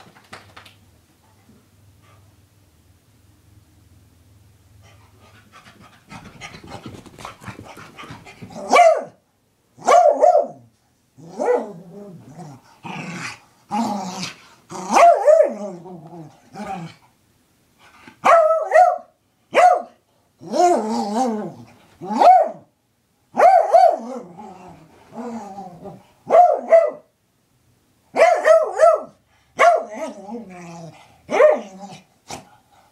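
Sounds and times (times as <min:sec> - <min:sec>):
dog barking and growling: 0:06.1 - 0:09.2, 0:09.8 - 0:17.0, 0:18.1 - 0:22.7, 0:23.3 - 0:27.1, 0:28.1 - 0:32.6.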